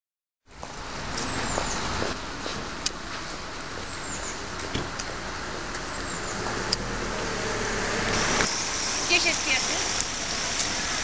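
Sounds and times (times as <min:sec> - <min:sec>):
low engine hum: 0:00.5 - 0:11.0
traffic on wet road: 0:00.5 - 0:11.0.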